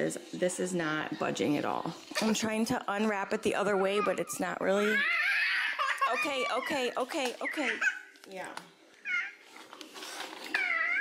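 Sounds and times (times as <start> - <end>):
toddler girl crying in pain: 3.7 - 8.0, 10.5 - 11.0.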